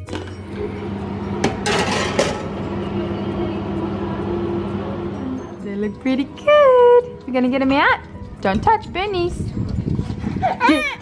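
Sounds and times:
steady low hum: 0.4 - 5.8
metal baking tray clattering: 1.6 - 2.5.

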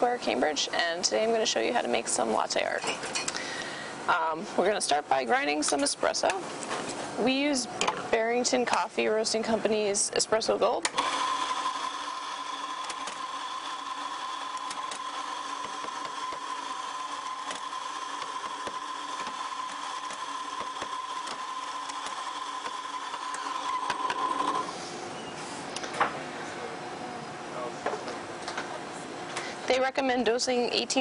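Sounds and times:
coffee grinder whining: 10.9 - 24.8.

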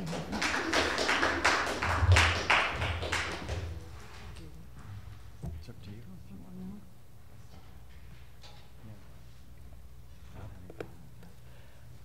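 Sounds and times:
small audience applauding: 0.0 - 4.2.

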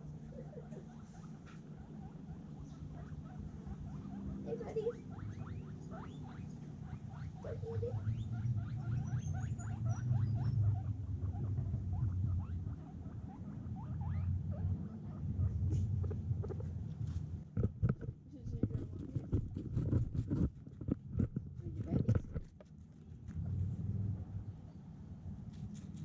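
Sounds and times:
guinea pigs squeaking: 0.0 - 23.6
low steady rumble: 0.0 - 26.0.

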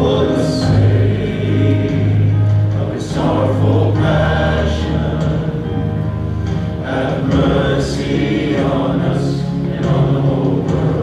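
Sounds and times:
voices singing together: 0.0 - 11.0
worship band playing: 0.0 - 11.0.

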